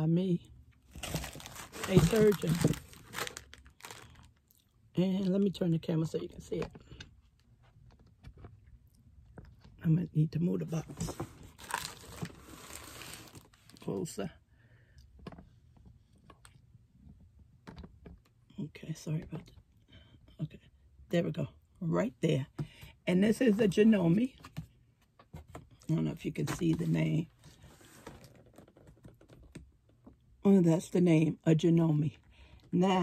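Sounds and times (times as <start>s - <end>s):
cardboard box scraping across surface: 11.0s - 13.4s.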